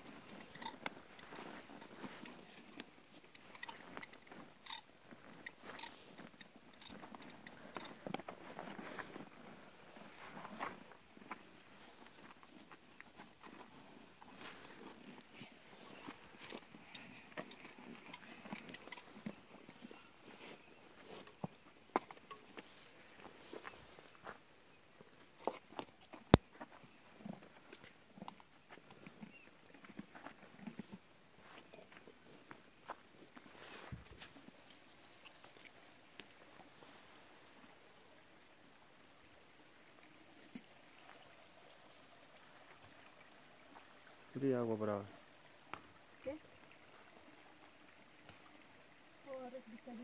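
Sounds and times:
horse tack jingling: 0:00.0 - 0:08.9, 0:15.9 - 0:24.2
horse hoofbeats on dirt: 0:00.0 - 0:35.5.

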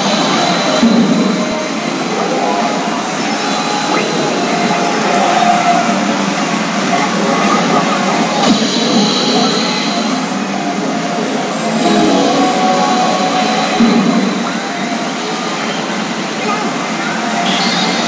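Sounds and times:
pachinko parlor din: 0:03.8 - 0:18.0
pachinko machine music and effects: 0:11.8 - 0:15.2.

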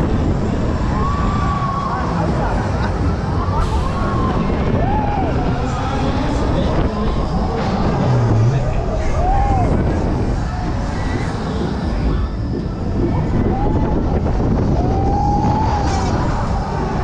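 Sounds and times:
fairground rumble: 0:00.0 - 0:17.0
rising and falling tones: 0:03.6 - 0:17.0.

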